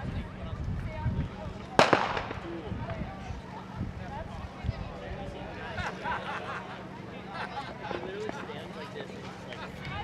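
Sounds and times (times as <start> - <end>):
crowd chatter: 0.0 - 10.0
starter's pistol shot: 1.8 - 2.5.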